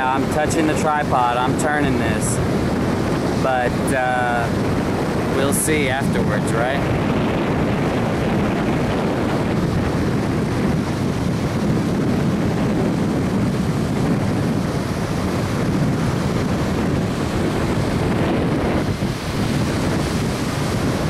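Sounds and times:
surf breaking on beach: 0.0s - 21.0s
wind buffeting microphone: 0.0s - 21.0s.

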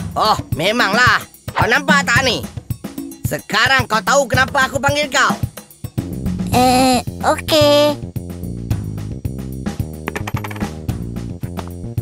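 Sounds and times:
background music: 0.0s - 12.0s
metal coins clinking: 10.1s - 10.7s.

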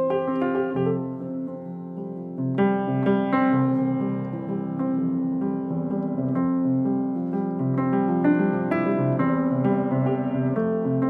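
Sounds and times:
upright piano playing chords: 0.0s - 11.0s.

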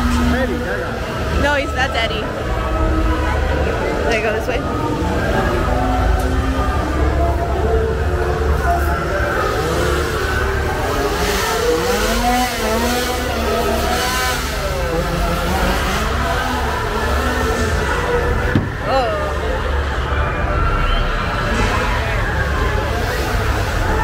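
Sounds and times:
crowd voices: 0.0s - 24.0s
deep steady rumble: 14.5s - 20.1s.

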